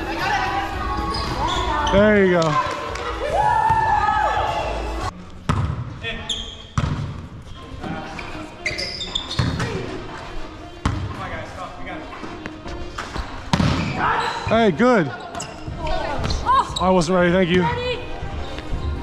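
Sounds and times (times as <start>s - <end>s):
sneakers squeaking on floor: 0.9s - 2.6s, 5.4s - 10.0s, 12.2s - 19.0s.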